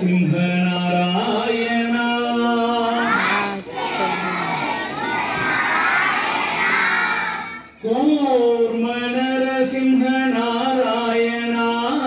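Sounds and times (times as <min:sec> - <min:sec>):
children singing together: 0:02.8 - 0:07.8.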